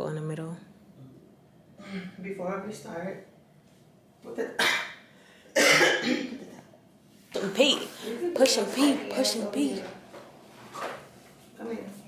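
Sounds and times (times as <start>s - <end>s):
woman coughing: 4.6s - 5.0s, 5.6s - 6.6s.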